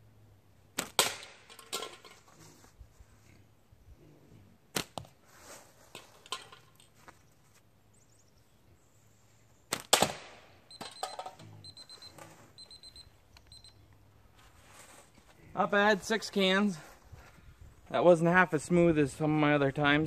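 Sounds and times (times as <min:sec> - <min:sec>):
slingshot shots cracking: 0:00.7 - 0:01.5, 0:04.7 - 0:05.1, 0:09.7 - 0:10.6
digital timer beeping: 0:10.7 - 0:13.8.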